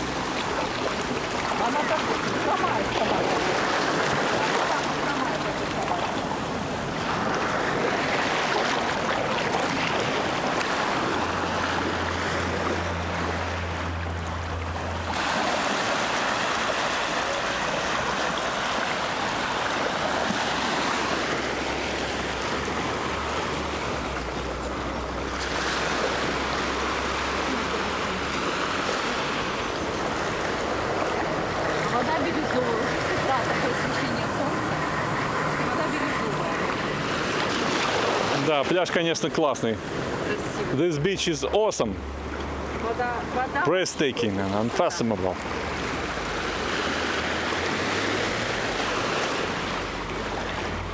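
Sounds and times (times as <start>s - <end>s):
small waves washing on sand: 0.0s - 50.9s.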